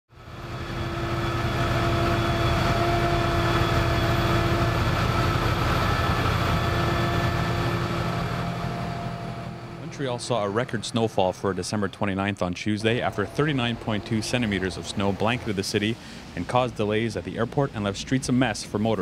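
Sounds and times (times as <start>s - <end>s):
diesel engine running: 0.1s - 19.0s
snowblower drum chewing snow: 0.1s - 19.0s.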